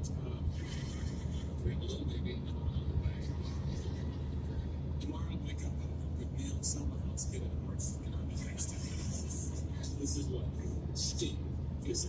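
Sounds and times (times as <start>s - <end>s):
faint talk: 0.0s - 12.0s.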